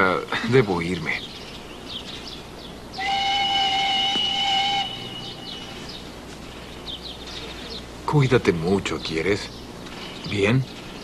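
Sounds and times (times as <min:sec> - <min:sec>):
steam train whistle: 0:03.0 - 0:05.7.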